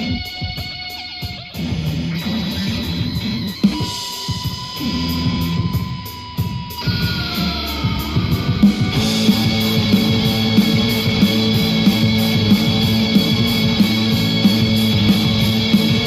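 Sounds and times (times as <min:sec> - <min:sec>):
guitar music through speakers: 0:00.0 - 0:16.0.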